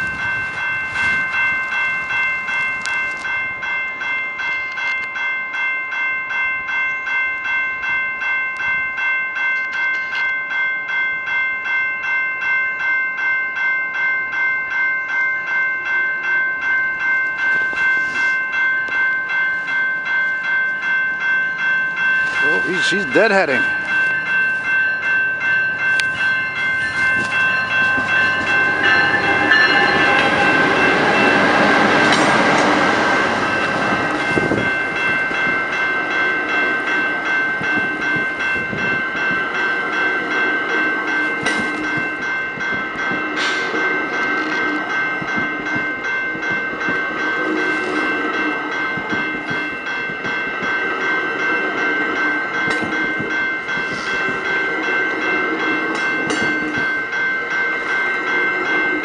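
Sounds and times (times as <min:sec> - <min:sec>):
bell ringing steadily: 0:00.0 - 0:59.0
train locomotive passing: 0:10.0 - 0:59.0
train wheels clacking over rail joints: 0:27.0 - 0:32.8.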